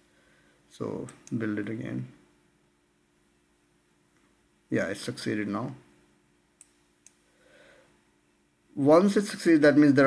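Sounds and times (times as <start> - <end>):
faint computer mouse clicks: 6.6 - 7.2.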